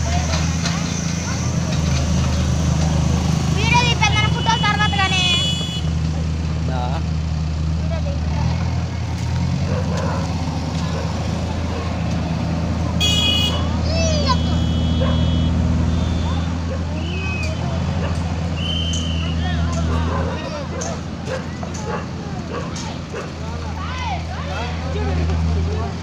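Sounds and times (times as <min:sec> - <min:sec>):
people calling and shouting: 0:00.0 - 0:26.0
vehicle engine running: 0:00.0 - 0:26.0.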